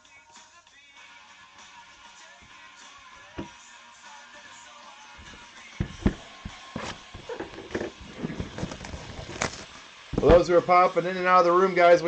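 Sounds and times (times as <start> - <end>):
faint background music: 0.0 - 12.0
cards and box knocking: 3.4 - 3.6, 5.2 - 10.4.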